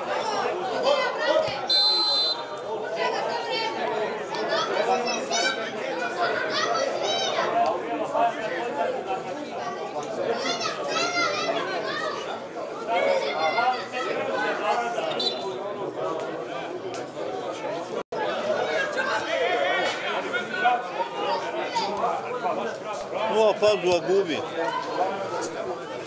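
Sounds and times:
voices shouting and calling out: 0.0s - 26.0s.

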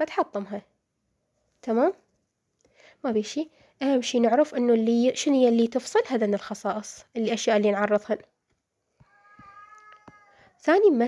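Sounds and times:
woman speaking: 0.0s - 0.7s, 1.6s - 2.0s, 3.0s - 8.3s, 10.6s - 11.0s.

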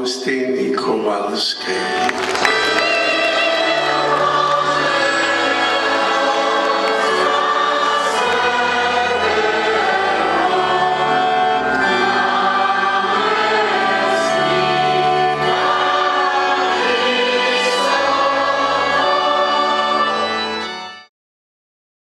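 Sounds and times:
choir singing a hymn: 2.4s - 20.9s.

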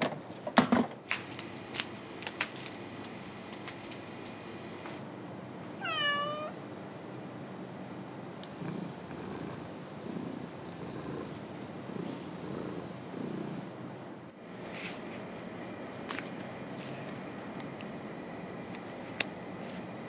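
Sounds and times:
cat meowing: 5.8s - 6.6s
low purring rumble: 8.4s - 13.8s.

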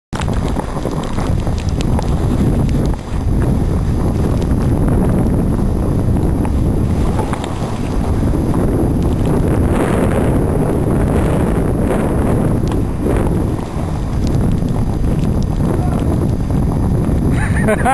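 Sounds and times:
wind buffeting microphone: 0.1s - 17.9s
skis scraping over snow: 0.2s - 17.9s.

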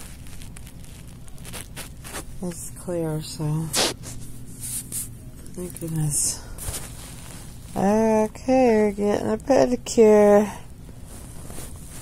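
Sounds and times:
faint rustling handling noise: 0.0s - 12.0s.

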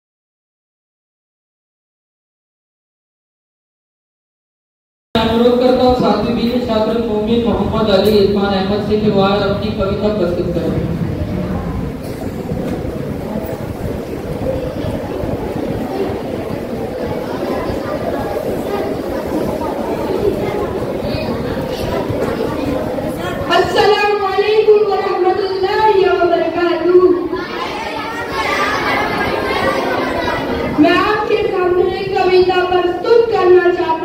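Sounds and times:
boy speaking into a microphone: 5.2s - 12.8s, 13.4s - 34.0s
children chattering: 5.2s - 34.0s
low room noise rumble: 5.2s - 34.0s.

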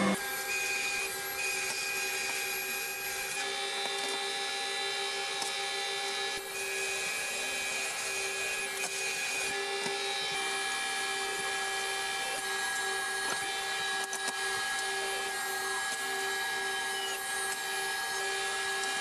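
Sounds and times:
thickness planer humming with whine: 0.0s - 19.0s.

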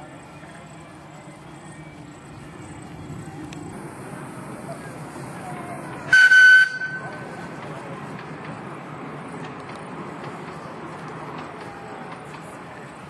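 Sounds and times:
distant voices: 0.0s - 13.0s
steady background noise: 0.0s - 13.0s
short loud whistle toot: 6.1s - 7.1s.

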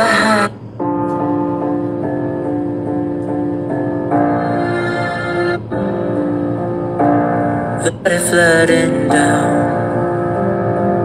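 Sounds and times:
held keyboard chords: 0.0s - 11.0s.

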